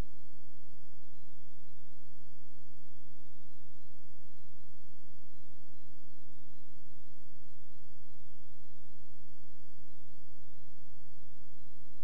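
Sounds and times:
electrical hum with hiss: 0.0 - 12.0
faint high whine: 0.0 - 12.0.

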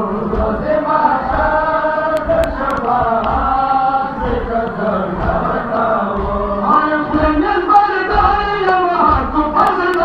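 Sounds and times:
chest-beating thumps: 0.0 - 10.0
voices chanting a lament: 0.0 - 10.0.

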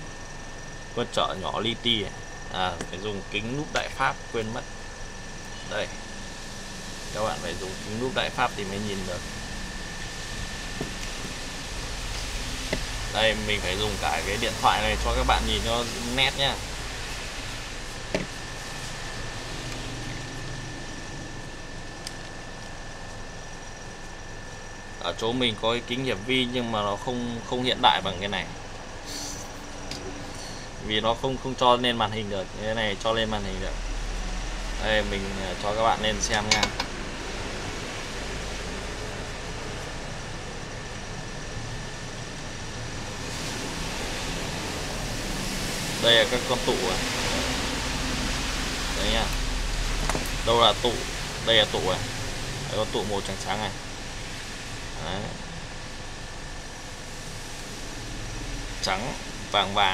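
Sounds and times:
fan-like rushing with whine: 0.0 - 59.9
steady background hiss: 0.0 - 59.9
low hum: 32.4 - 59.9.

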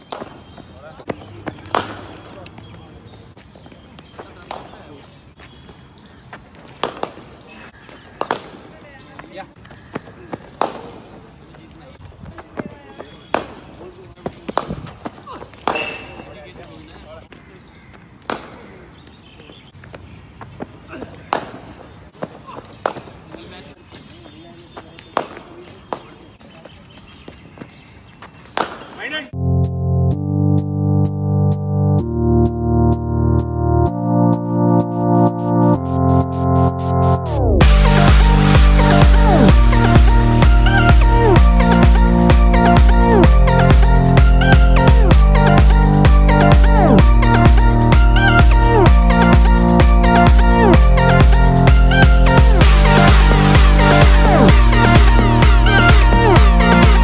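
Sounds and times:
voices chattering: 0.0 - 29.4
cricket ball hitting bat: 1.4 - 2.3, 15.5 - 16.2.

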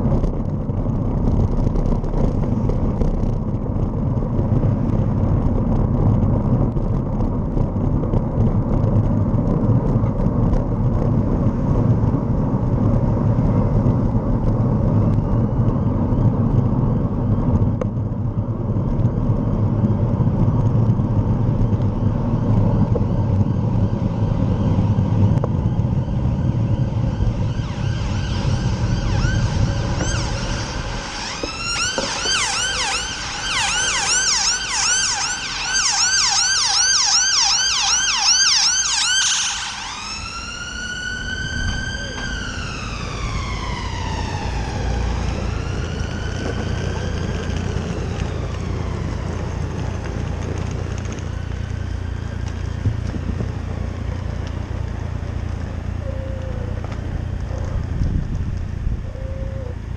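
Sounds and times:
traffic noise: 0.0 - 59.9
wind: 0.0 - 59.9
emergency vehicle siren: 20.4 - 57.9, 58.6 - 59.9.

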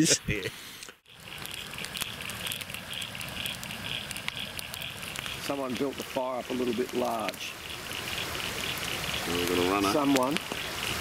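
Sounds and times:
campfire crackling and popping: 0.0 - 11.0.

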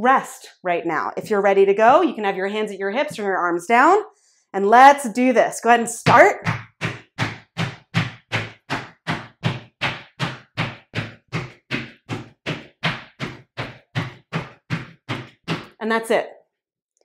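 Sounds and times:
feet thudding from jumps: 6.1 - 15.8.

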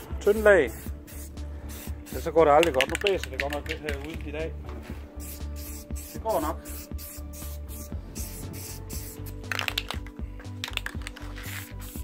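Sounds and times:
background music with beat: 0.0 - 12.0
spray paint can hissing: 0.2 - 4.2, 5.2 - 12.0.

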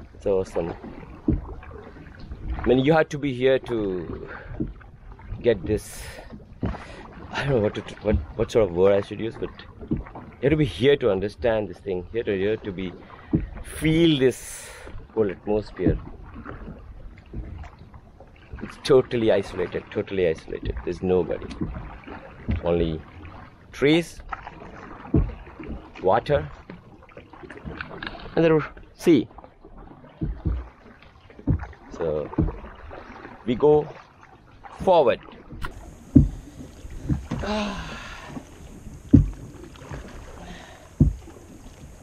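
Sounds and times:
faint water sounds: 0.0 - 42.0
man talking: 0.2 - 0.8, 2.7 - 4.3, 5.5 - 6.2, 7.4 - 9.6, 10.4 - 13.0, 13.7 - 16.0, 18.8 - 21.5, 22.6 - 23.0, 23.8 - 24.2, 26.0 - 26.5, 28.4 - 29.3, 32.0 - 32.4, 33.5 - 33.9, 34.8 - 35.2
soft low thuds: 1.1 - 1.7, 25.0 - 25.9, 30.2 - 33.0, 35.5 - 42.0.

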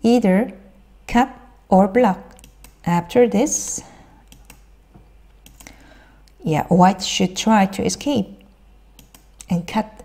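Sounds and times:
faint computer mouse clicks: 5.4 - 5.8.

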